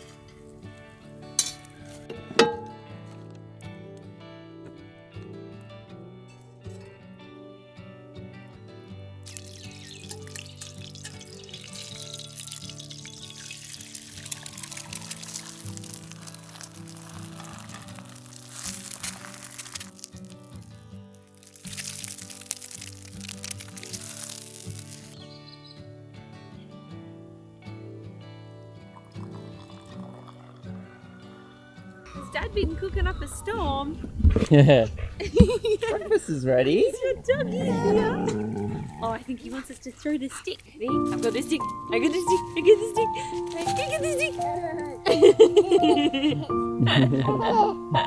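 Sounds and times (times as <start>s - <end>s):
background music: 0.0s - 34.7s, 40.8s - 48.0s
eggs sizzling in a frying pan: 9.2s - 25.3s, 29.0s - 30.8s.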